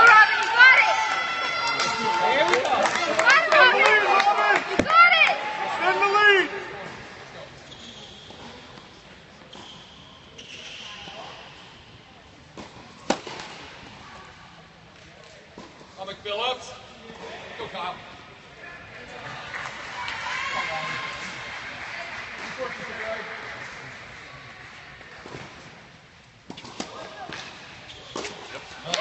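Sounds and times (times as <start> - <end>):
tennis ball smack: 12.6 - 13.6.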